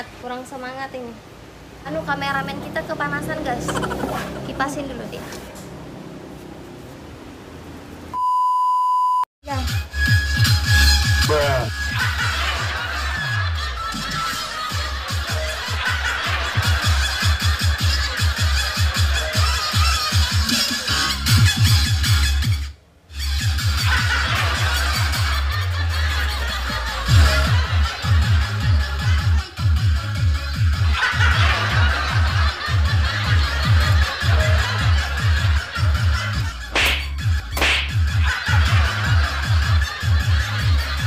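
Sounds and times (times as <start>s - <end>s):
short steady beep: 8.1s - 9.2s
electronic dance music: 9.9s - 13.4s, 14.0s - 41.0s.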